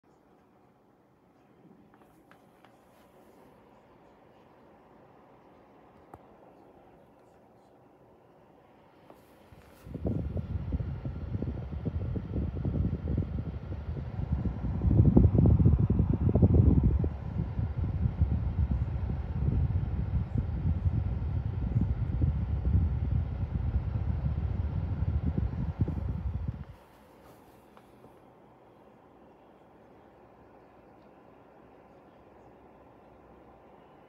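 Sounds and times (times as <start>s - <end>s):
air purifier fan blowing: 0.0s - 34.0s
air stream buffeting microphone: 9.4s - 27.3s.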